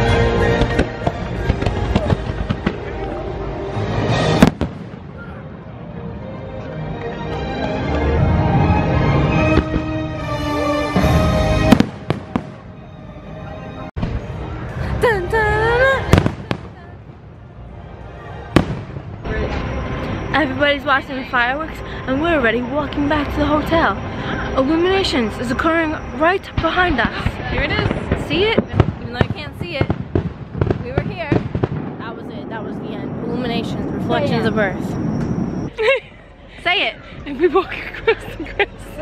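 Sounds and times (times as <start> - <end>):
music soundtrack: 0.0 - 29.0
fireworks popping and banging: 0.6 - 3.1, 4.1 - 5.1, 11.7 - 12.6, 26.6 - 34.4.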